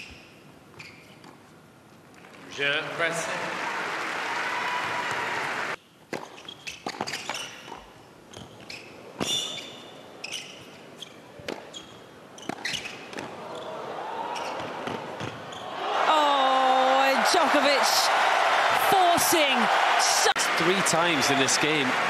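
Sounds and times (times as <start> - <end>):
shoes squeaking on court: 0.0 - 1.6, 6.1 - 15.8
crowd applause: 2.5 - 5.8, 15.8 - 22.0.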